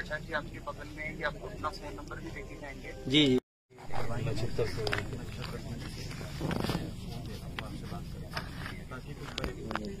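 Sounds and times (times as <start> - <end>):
low indistinct voices: 0.0 - 10.0.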